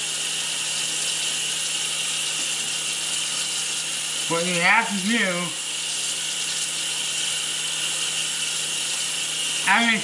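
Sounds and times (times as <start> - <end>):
tap water running into sink: 0.0 - 10.0.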